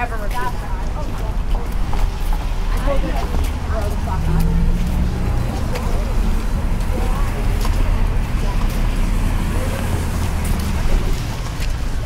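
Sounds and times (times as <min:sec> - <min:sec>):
faint voices of passers-by: 0:00.0 - 0:12.0
street traffic rumble: 0:00.0 - 0:12.0.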